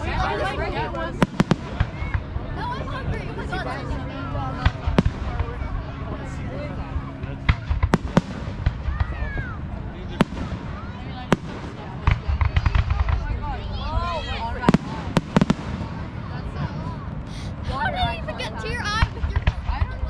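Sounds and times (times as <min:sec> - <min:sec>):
fireworks bursting: 0:01.1 - 0:02.4, 0:04.6 - 0:05.7, 0:07.4 - 0:13.6, 0:14.2 - 0:16.8.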